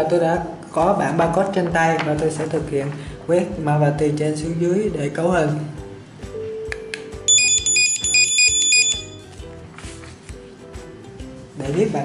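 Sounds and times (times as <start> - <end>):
background music: 0.0 - 12.0
barcode scanner beeping: 7.3 - 9.3.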